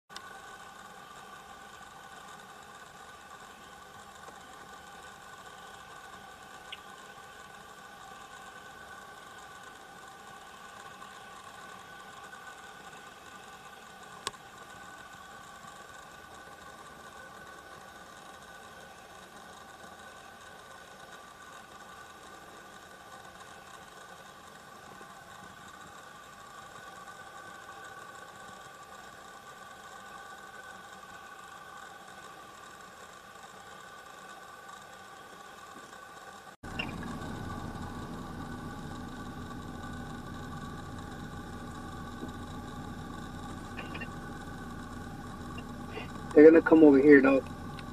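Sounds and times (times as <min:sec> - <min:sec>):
faint steady hum: 0:00.1 - 0:47.9.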